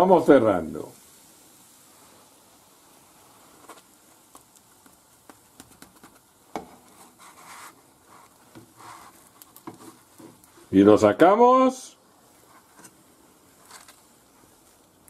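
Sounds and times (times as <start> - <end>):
faint pan sizzle: 0.0 - 15.0
spatula scraping in a pan: 6.0 - 10.7, 12.4 - 14.0.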